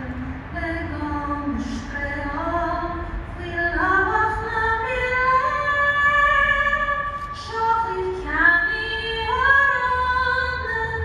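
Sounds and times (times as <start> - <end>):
woman singing over loudspeakers: 0.0 - 11.0.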